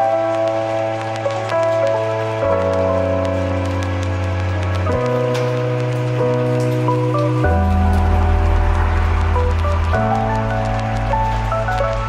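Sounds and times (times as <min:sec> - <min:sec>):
background music with bass notes: 0:00.0 - 0:12.0.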